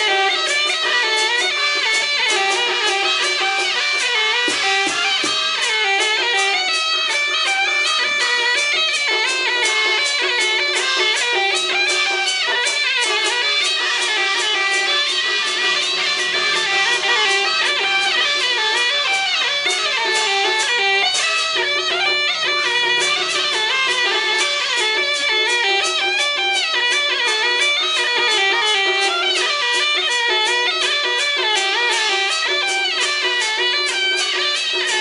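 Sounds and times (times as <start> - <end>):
bowed fiddle: 0.0 - 35.0
plucked-string melody: 0.0 - 35.0
steady beat: 0.0 - 35.0.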